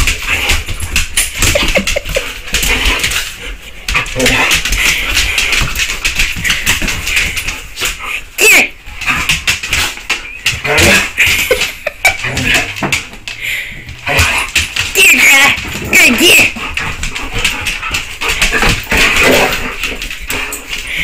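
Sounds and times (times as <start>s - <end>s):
dogs whining and yelping: 9.9s - 12.8s.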